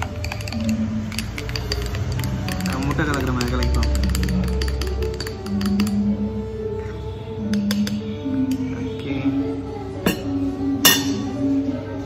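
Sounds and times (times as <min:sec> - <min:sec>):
glassware clinking: 0:00.0 - 0:06.0, 0:10.0 - 0:11.4
background music: 0:00.0 - 0:12.0.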